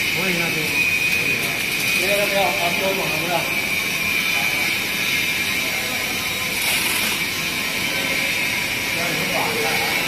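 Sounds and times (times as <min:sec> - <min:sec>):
machine running with high whine: 0:00.0 - 0:10.0.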